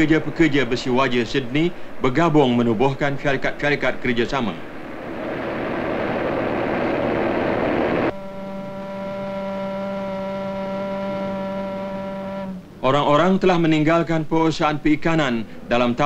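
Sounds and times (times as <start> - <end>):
furnace roar: 4.9 - 8.1
low-pitched whistle blast: 8.0 - 12.8.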